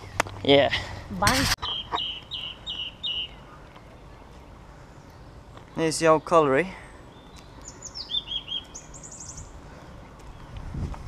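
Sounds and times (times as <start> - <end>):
songbird chirping: 1.6 - 10.8.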